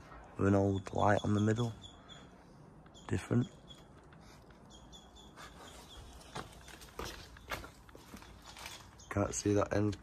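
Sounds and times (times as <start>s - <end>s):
footsteps crunching through undergrowth: 5.7s - 9.4s.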